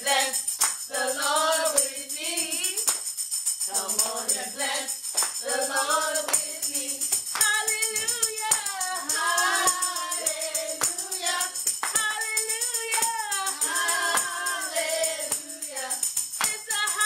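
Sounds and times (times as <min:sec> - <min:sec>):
woman singing gospel song: 0:00.0 - 0:02.9, 0:03.7 - 0:17.0
tambourine jingling: 0:00.0 - 0:17.0.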